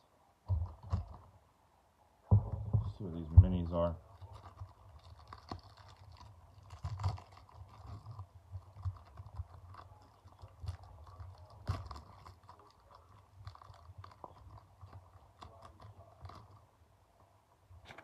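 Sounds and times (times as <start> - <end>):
plastic wrapper crinkling: 3.1 - 16.8.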